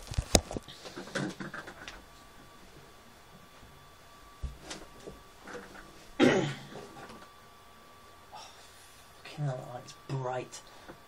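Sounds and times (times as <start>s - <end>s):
man clearing his throat: 6.2s - 6.8s.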